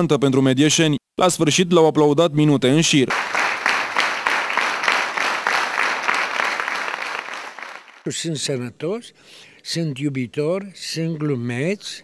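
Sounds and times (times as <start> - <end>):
audience applauding: 3.1 - 8.1.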